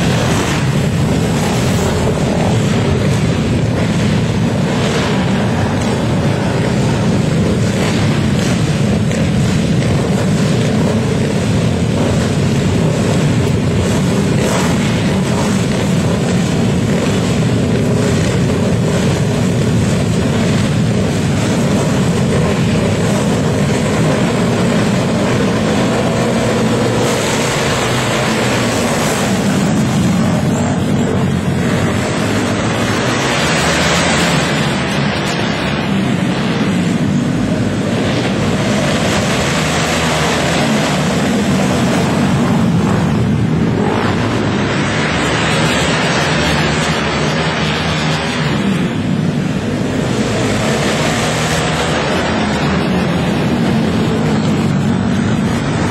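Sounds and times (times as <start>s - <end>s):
motorcycle engines revving: 0.0s - 55.9s.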